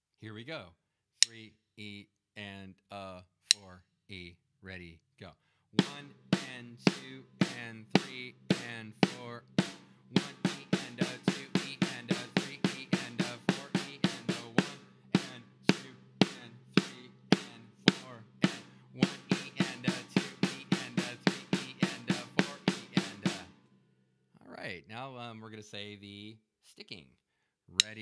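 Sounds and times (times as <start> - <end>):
drumsticks on drum kit: 5.8 - 23.5, 27.8 - 28.0.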